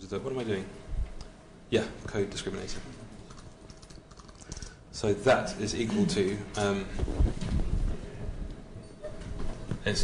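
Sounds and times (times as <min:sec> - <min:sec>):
keyboard typing: 0:03.3 - 0:04.8.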